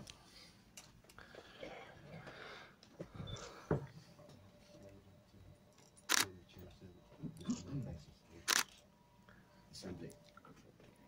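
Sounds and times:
low room murmur: 0.0s - 11.0s
camera shutter click: 6.1s - 6.3s, 8.5s - 8.8s.

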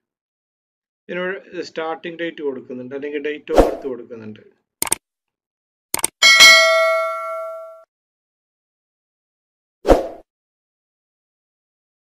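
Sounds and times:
quick clicks: 4.8s - 5.0s, 5.9s - 6.2s
bright bell ding: 6.2s - 7.8s.

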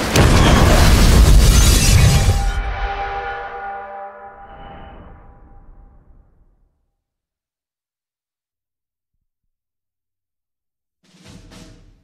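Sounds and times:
loud explosion boom: 0.0s - 3.2s.

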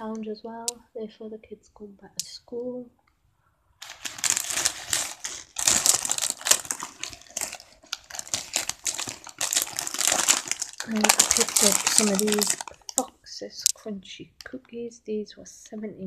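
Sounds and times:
plastic wrappers crinkling: 3.8s - 13.8s.

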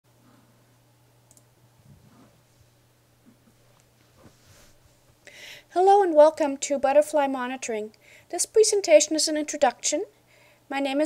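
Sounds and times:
steady low hum: 0.1s - 11.0s
computer mouse clicks: 1.3s - 1.5s.

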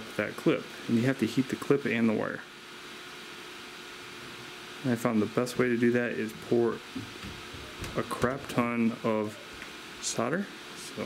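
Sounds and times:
man talking: 0.0s - 2.5s, 4.8s - 6.9s, 7.9s - 11.0s.

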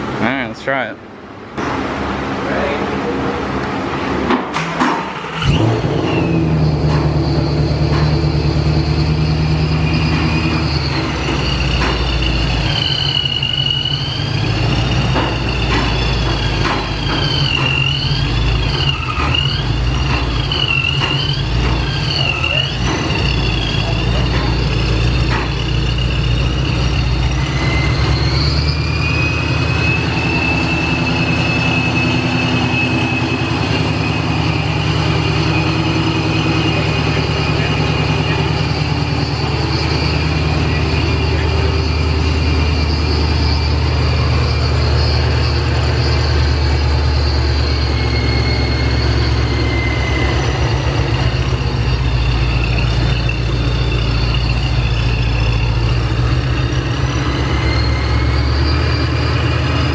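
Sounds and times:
high supercharger whine: 0.0s - 59.9s
car engine idling: 2.9s - 59.9s.

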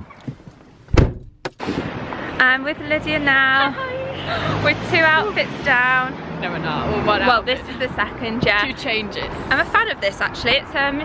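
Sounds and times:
car door shutting: 0.1s - 1.9s.

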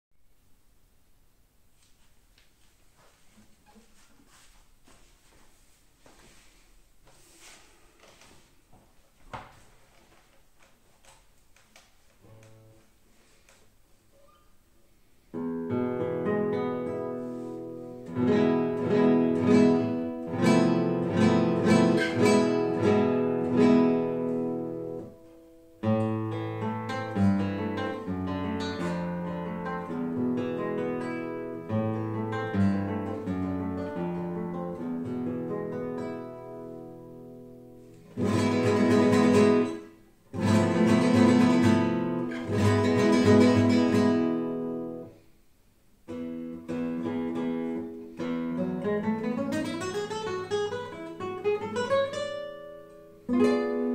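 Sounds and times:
classical guitar playing: 12.2s - 13.4s, 14.1s - 45.3s, 46.0s - 53.9s.

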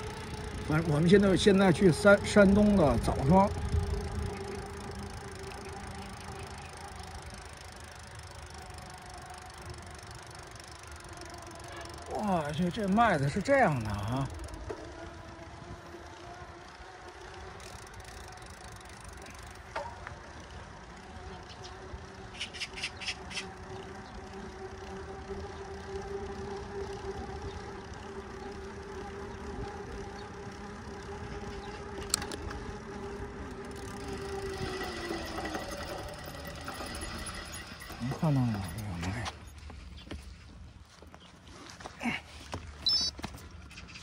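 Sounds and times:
bicycle freewheel ticking: 0.0s - 41.0s, 41.9s - 44.0s
bike tyre hum on asphalt: 0.0s - 44.0s.

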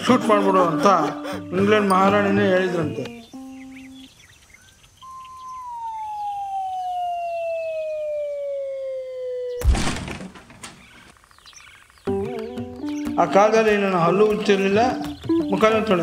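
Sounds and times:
dog howling: 5.6s - 9.6s
loud crash: 9.6s - 10.7s.

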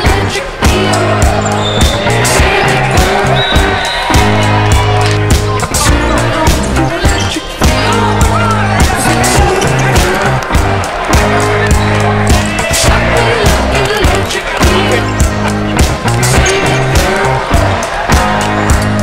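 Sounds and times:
music with heavy bass: 0.0s - 19.0s.

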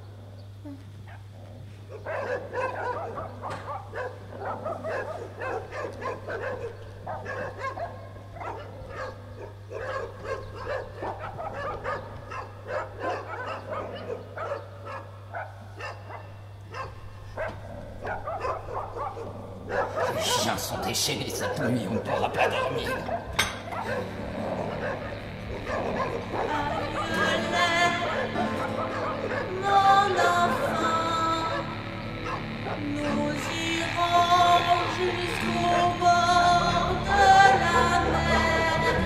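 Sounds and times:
dogs barking and yipping: 1.1s - 39.0s.

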